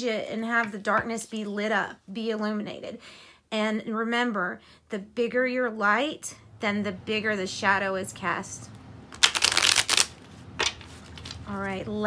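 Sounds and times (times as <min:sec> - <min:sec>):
cards riffled: 0:09.2 - 0:11.5.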